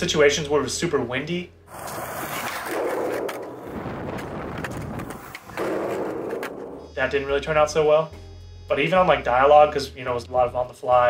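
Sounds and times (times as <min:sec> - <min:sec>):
skateboard wheels rolling on concrete: 0:01.7 - 0:07.0
wind buffeting microphone: 0:03.5 - 0:06.8.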